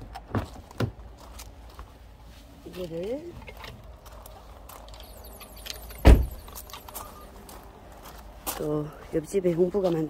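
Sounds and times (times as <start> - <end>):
footsteps on gravel: 0.4 - 10.0.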